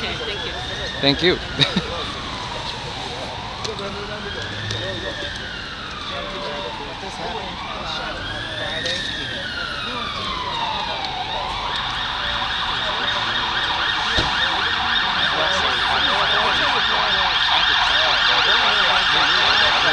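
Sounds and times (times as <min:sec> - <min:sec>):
emergency vehicle siren: 0:00.0 - 0:19.9.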